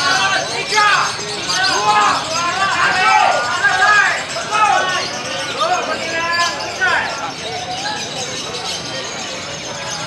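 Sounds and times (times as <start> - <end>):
people calling out: 0.0 - 10.0.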